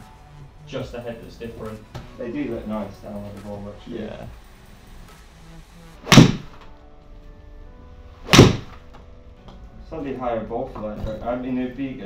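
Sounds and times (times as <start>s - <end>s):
golf club striking ball: 6.1s - 6.6s, 8.2s - 8.8s.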